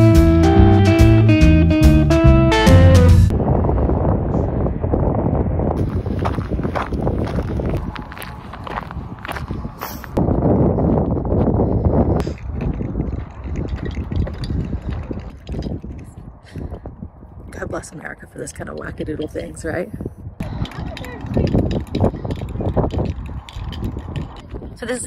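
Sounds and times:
wind buffeting microphone: 3.3s - 25.0s.

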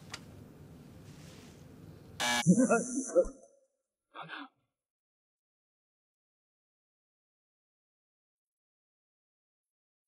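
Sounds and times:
loud electronic buzz: 2.2s - 3.5s
man laughing: 2.4s - 3.4s
man's voice: 2.5s - 3.4s.

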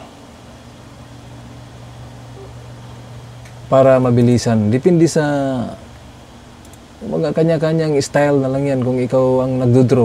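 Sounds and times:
low hum with faint hiss: 0.0s - 10.0s.

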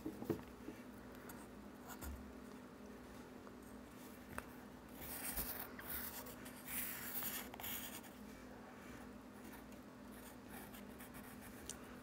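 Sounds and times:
pencil scratching on paper: 5.0s - 8.1s, 10.1s - 11.6s.

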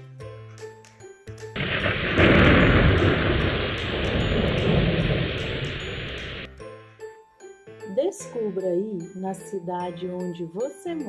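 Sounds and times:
children's background music: 0.0s - 11.0s
heavy rain: 1.6s - 6.5s
thunder rumbling: 1.6s - 6.5s.

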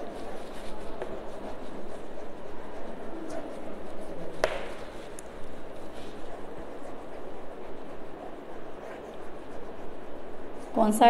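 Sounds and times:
chalk tapping on blackboard: 0.0s - 7.3s
chalk scraping: 0.0s - 11.0s.

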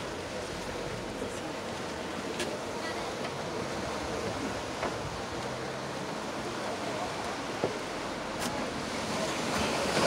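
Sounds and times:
ocean surf: 0.0s - 10.0s
wind: 0.0s - 10.0s.

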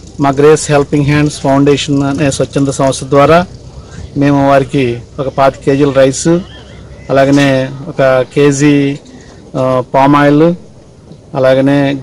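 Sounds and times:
man speaking: 0.2s - 12.0s.

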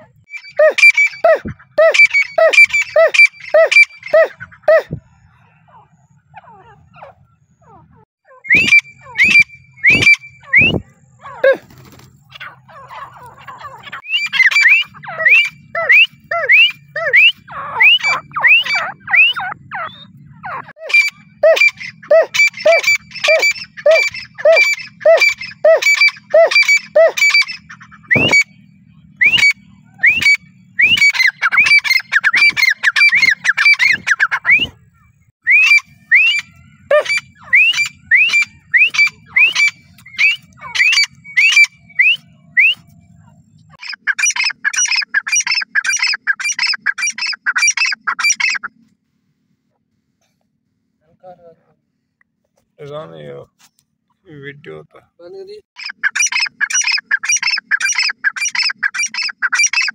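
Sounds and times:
bird calling sharp ringing notes: 0.2s - 48.7s, 55.8s - 59.9s.

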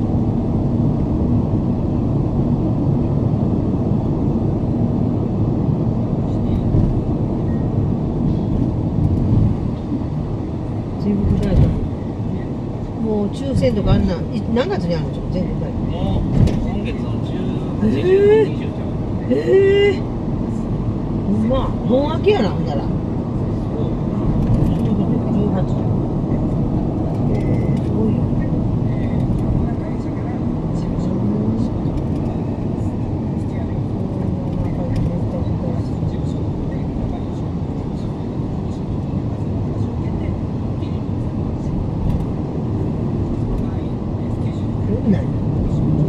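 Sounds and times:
car road and engine noise: 0.0s - 46.0s.

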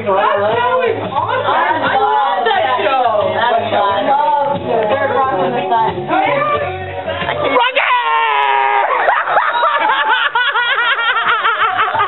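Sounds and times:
people laughing: 7.6s - 12.0s.

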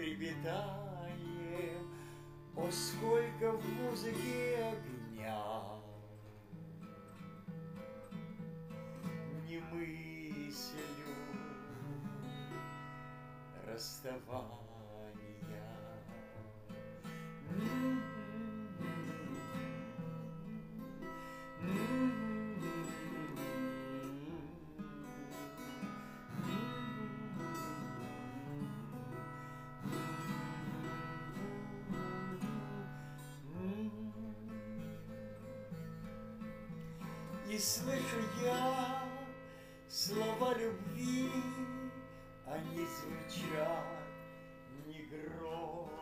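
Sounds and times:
acoustic guitar playing: 0.0s - 46.0s.

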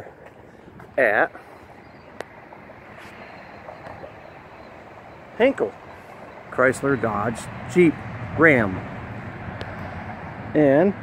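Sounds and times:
distant traffic: 0.0s - 11.0s.

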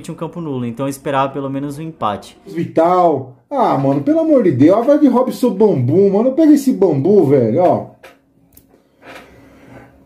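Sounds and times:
man speaking: 0.0s - 8.0s.

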